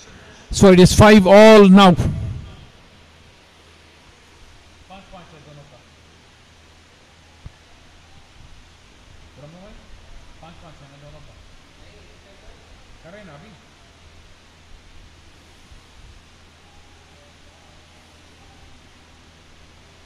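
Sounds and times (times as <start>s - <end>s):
low hum and hiss: 0.0s - 20.0s.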